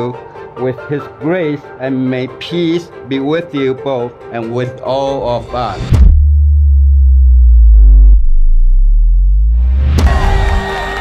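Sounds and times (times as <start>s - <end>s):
deep synthesized bass drone: 5.9s - 10.6s.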